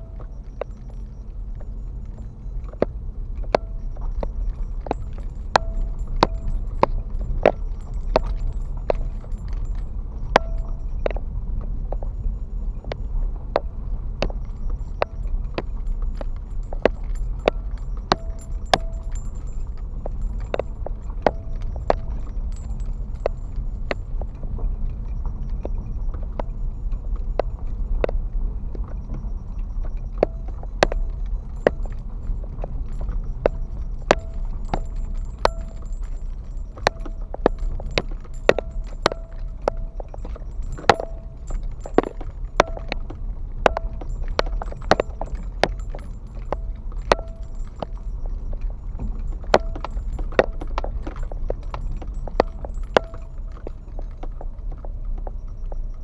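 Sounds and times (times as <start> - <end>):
car rumbling over gravel road: 30.1 - 56.0
car rattles and knocks: 30.2 - 55.9.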